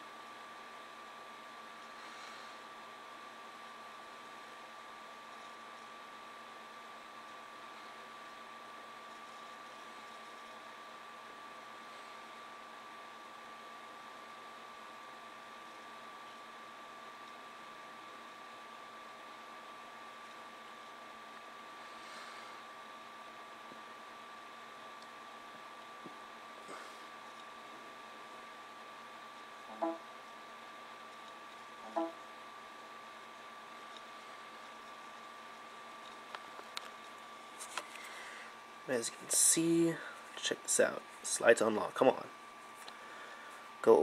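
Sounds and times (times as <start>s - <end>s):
high-pitched whine: 29.6s - 30.3s, 31.8s - 32.4s.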